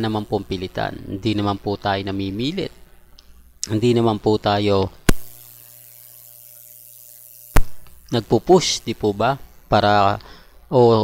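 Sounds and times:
faint hiss: 0:00.0 - 0:11.0
low electrical hum: 0:00.0 - 0:11.0
sharp click: 0:05.0 - 0:05.4, 0:07.5 - 0:08.1.

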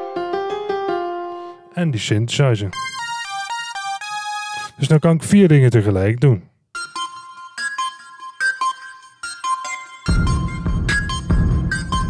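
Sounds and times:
bright keyboard notes: 0:00.0 - 0:01.8, 0:02.7 - 0:04.8.

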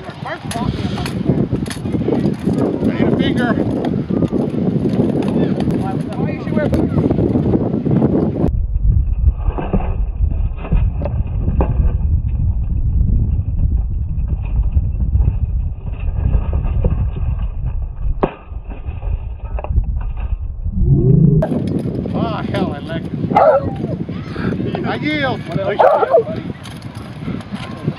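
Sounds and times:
wind rumble on microphone: 0:00.0 - 0:27.9
voices: 0:23.3 - 0:26.6.

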